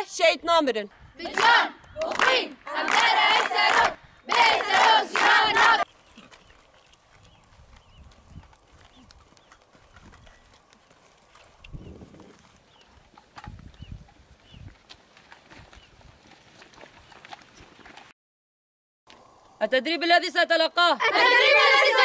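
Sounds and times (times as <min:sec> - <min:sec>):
women chanting in unison: 0:01.2 - 0:05.9, 0:21.0 - 0:22.0
people clapping: 0:01.3 - 0:05.8.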